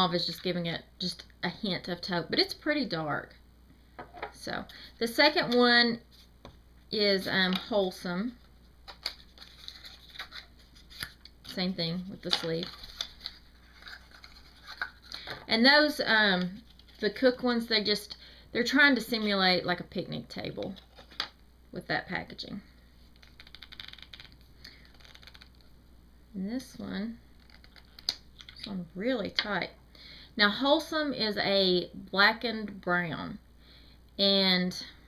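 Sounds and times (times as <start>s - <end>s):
cardboard sleeve rustling: 9.1s - 11.2s, 12.2s - 15.2s.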